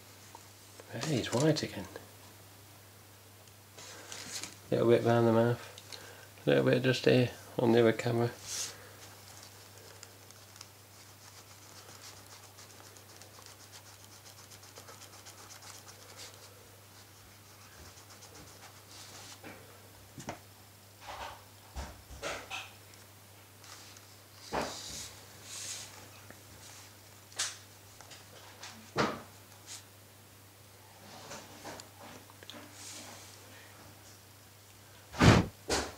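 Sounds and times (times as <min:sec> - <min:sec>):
eraser rubbing on plastic: 0:10.3 - 0:16.4, 0:17.0 - 0:19.4.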